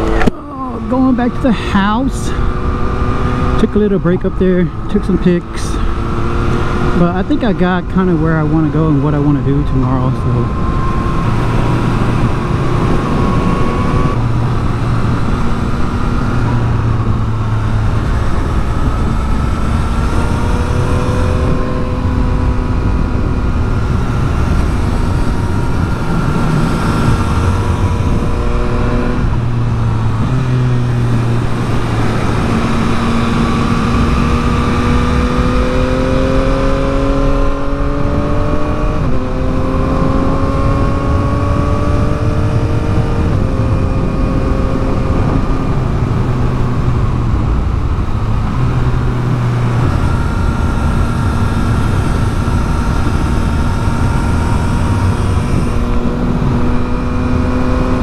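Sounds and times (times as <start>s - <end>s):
motorcycle engine revving: 0.0s - 58.0s
wind and road noise: 0.0s - 58.0s.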